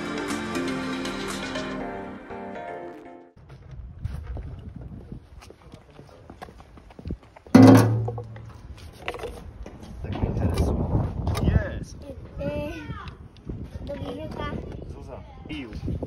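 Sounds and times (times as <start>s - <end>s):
loud thump: 7.6s - 8.5s
handling noises: 7.6s - 9.6s.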